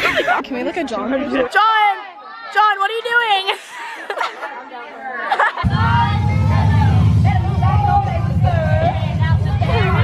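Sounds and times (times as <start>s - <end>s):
people chattering: 0.0s - 10.0s
loud low rumble: 5.6s - 10.0s.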